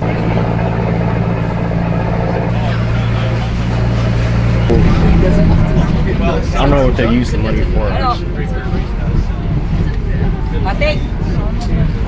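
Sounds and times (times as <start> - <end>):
boat engine humming: 0.0 - 12.0.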